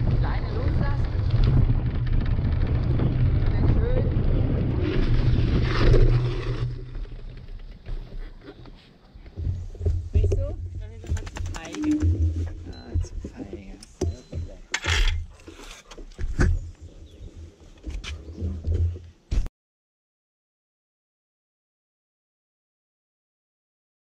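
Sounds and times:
wind buffeting microphone: 0.0 - 6.4
bike tyres rolling on dirt: 0.0 - 8.6.

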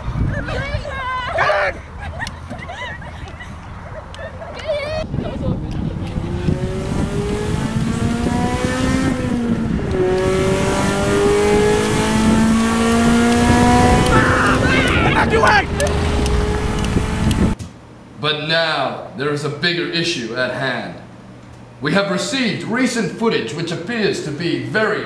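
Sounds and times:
people shouting: 0.4 - 1.9, 14.0 - 15.9
car engine accelerating: 5.6 - 17.6.

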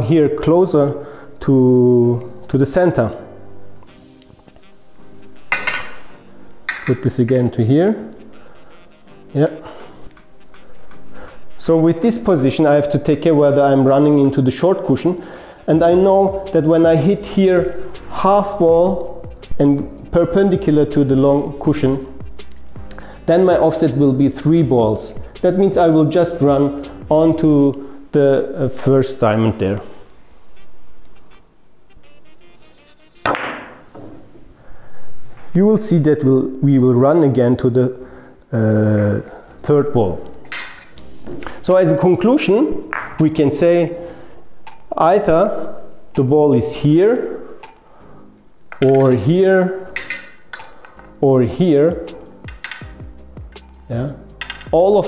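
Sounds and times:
faint background music: 0.0 - 55.0
billiard balls clacking: 5.4 - 7.1, 33.3 - 34.3, 42.9 - 43.2, 48.7 - 51.2, 52.4 - 53.7, 54.3 - 54.8
billiard balls clicking together: 42.9 - 43.2, 48.7 - 49.3, 49.9 - 51.2, 52.4 - 55.0.

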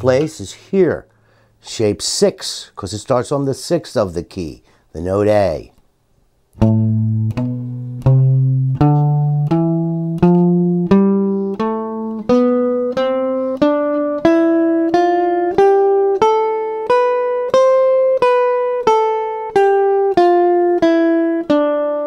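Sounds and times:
jazz guitar playing a scale: 6.6 - 22.0.

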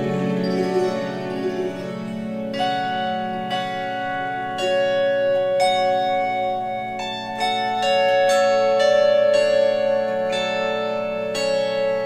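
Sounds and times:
harp plucked slowly: 0.0 - 12.0.

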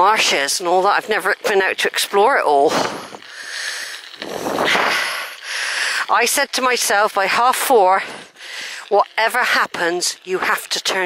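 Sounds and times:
person breathing hard: 2.7 - 6.1, 8.0 - 8.9.

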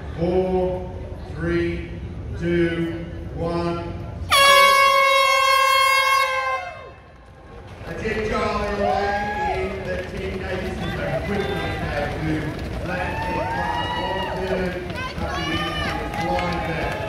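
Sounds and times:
air horn blast: 4.3 - 7.0
crowd cheering and shouting: 8.5 - 9.9, 10.5 - 17.0.

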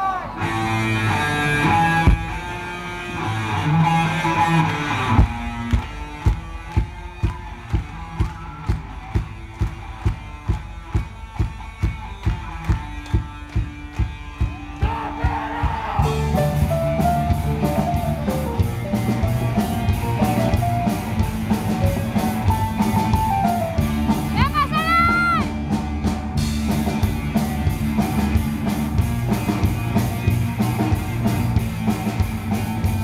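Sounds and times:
live rock band with electric guitars: 0.0 - 33.0.

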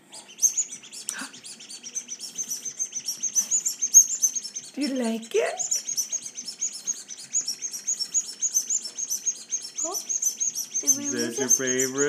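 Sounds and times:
toy ball chirping: 0.2 - 12.0.

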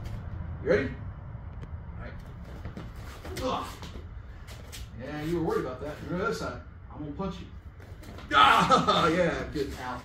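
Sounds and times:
steady low hum: 0.0 - 10.0
man grunting: 3.3 - 3.9.

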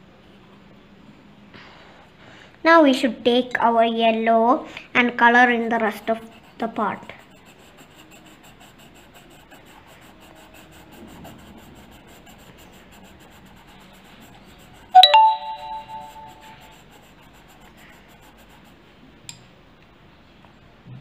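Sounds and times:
pencil scratching on paper: 5.6 - 15.0, 15.8 - 19.1
two-note doorbell chime: 15.0 - 16.5.

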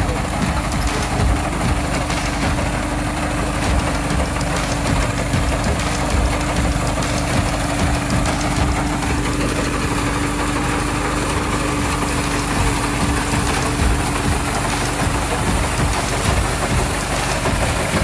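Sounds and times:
harvester engine droning: 0.0 - 18.0.

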